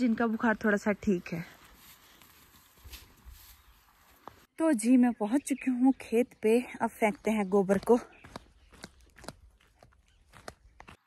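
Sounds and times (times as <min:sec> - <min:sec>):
footsteps crunching on dry grass: 0:01.1 - 0:04.5, 0:07.2 - 0:11.0.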